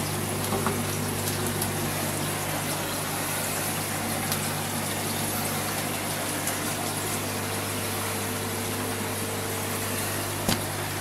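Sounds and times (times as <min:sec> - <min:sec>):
air bubbles in water: 0:00.0 - 0:11.0
aquarium air pump humming: 0:00.0 - 0:11.0.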